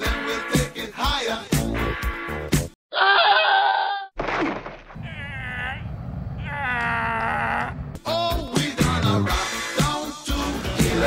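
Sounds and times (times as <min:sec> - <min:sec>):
man wailing: 0:02.9 - 0:04.1, 0:05.0 - 0:07.9.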